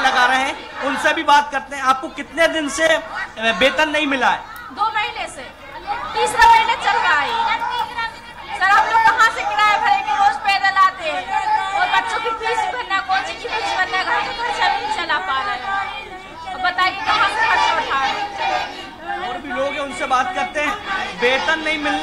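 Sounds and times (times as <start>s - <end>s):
people chattering: 0.0s - 22.0s.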